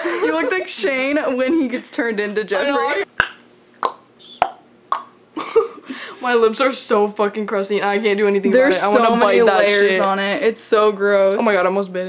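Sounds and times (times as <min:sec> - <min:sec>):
lips smacking: 0:03.2 - 0:05.1.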